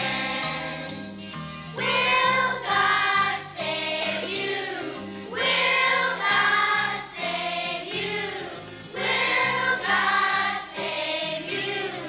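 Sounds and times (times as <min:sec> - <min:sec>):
children's choir singing: 0:00.0 - 0:12.0
instrumental accompaniment: 0:00.0 - 0:12.0.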